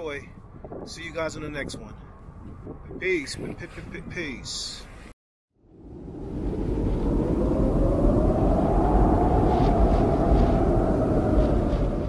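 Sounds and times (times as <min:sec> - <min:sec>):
rumbling whoosh sound effect: 0:05.6 - 0:12.0.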